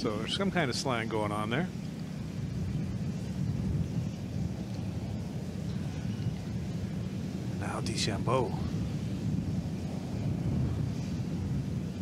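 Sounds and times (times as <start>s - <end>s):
low outdoor ambience rumble: 0.0s - 12.0s.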